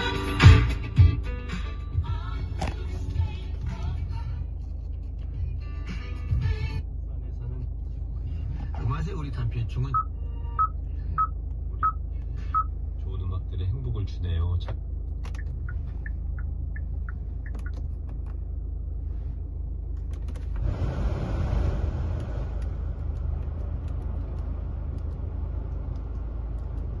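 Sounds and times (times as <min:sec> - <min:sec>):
low engine rumble: 0:00.0 - 0:27.0
climate blower air rush: 0:19.0 - 0:26.9.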